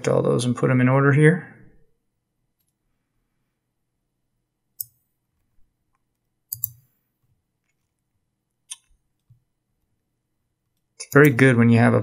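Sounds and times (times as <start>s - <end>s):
computer mouse clicking: 4.8s - 5.0s, 5.9s - 6.9s.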